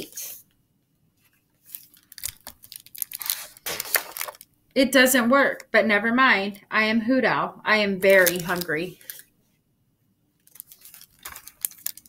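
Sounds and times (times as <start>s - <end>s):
book page turning rustles: 1.2s - 4.5s, 8.1s - 9.2s, 10.4s - 12.0s.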